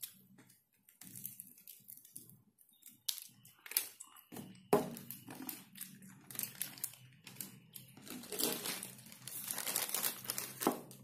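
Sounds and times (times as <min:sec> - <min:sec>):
plastic and paper crinkling: 0:00.0 - 0:11.0.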